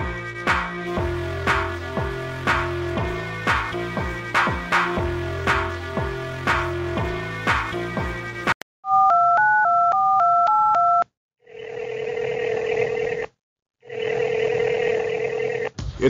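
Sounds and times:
music: 0.0s - 8.6s
touch-tone keypad beeps: 8.9s - 11.0s
phone ring tones: 8.9s - 13.2s, 13.8s - 15.7s.

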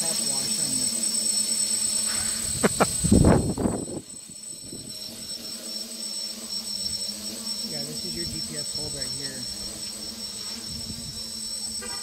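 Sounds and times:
crickets chirring: 0.0s - 12.0s
quadcopter motors humming: 0.0s - 12.0s.

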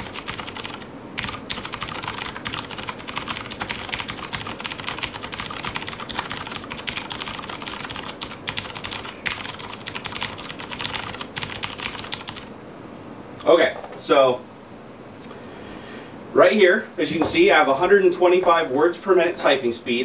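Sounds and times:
fast typing on mechanical keyboard: 0.0s - 12.5s.

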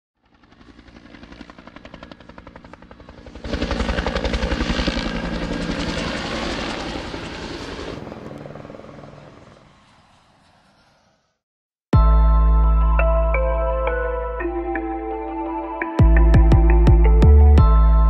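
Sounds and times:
helicopter rotor chopping: 0.2s - 11.4s.

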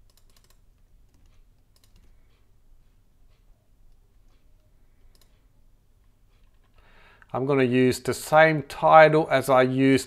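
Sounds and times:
computer keyboard and mouse clicks: 0.0s - 2.2s, 3.9s - 5.4s.

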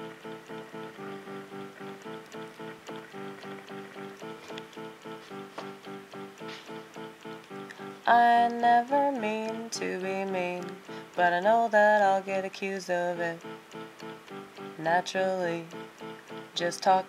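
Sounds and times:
electronic keyboard repeated notes: 0.0s - 17.0s.

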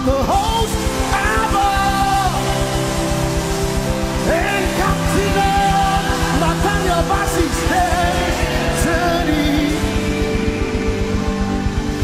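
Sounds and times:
person singing sliding upward: 0.0s - 11.8s
live worship band music: 0.0s - 12.0s.

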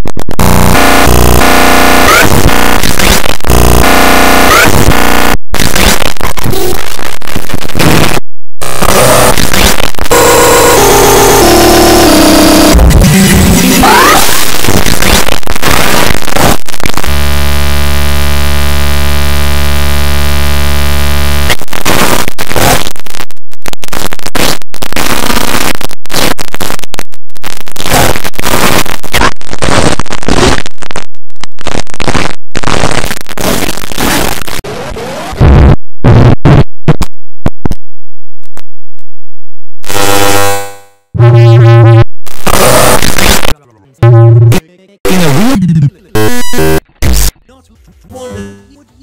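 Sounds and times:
distorted cartoon soundtrack: 0.0s - 31.0s, 31.6s - 37.0s, 39.9s - 49.0s
harsh buzz: 0.0s - 37.1s, 39.8s - 47.4s.

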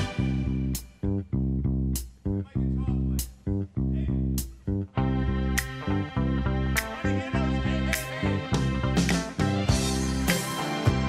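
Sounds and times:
soul-pop backing music: 0.0s - 1.0s, 4.4s - 11.0s.

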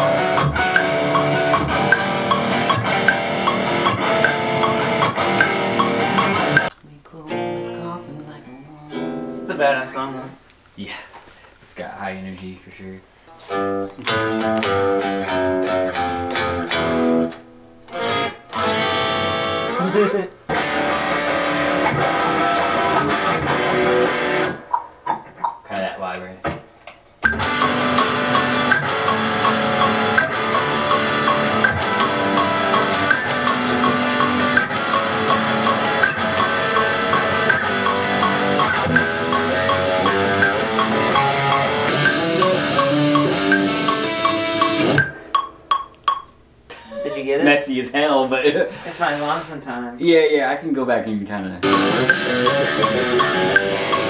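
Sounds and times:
electric guitar playing: 0.0s - 10.3s, 13.3s - 25.4s, 27.2s - 46.1s, 51.6s - 54.0s.

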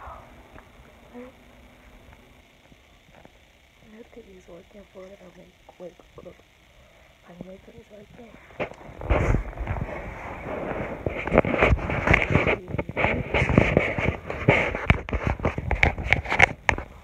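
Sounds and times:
phone microphone rustling: 7.4s - 17.0s.

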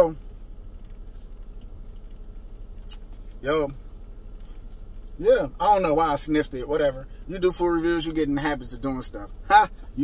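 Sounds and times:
low background hum: 0.0s - 10.0s
man speaking: 5.2s - 10.0s.

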